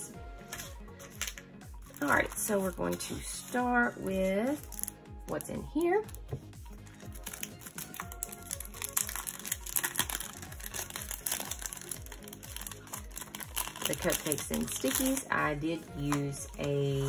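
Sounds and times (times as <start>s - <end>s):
background music: 0.0s - 17.0s
plastic sleeves crinkling: 7.0s - 15.4s.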